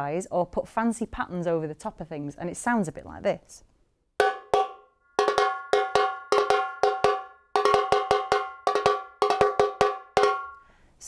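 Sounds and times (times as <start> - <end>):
metal drum struck with sticks: 4.2 - 10.6.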